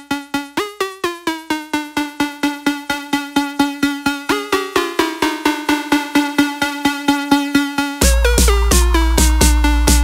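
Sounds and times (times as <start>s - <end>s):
tech house music: 0.0s - 10.0s.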